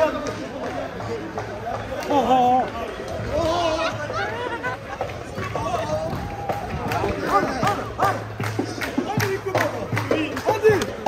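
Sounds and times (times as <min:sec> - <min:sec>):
people's voices: 0:00.0 - 0:11.0
street noise: 0:00.0 - 0:11.0.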